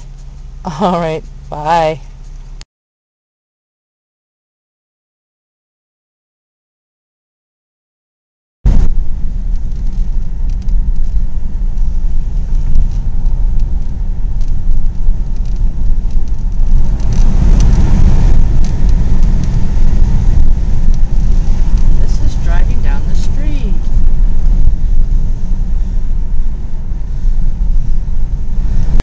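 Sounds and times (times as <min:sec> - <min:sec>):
car road noise rumble: 0:00.0 - 0:02.6, 0:08.7 - 0:29.0.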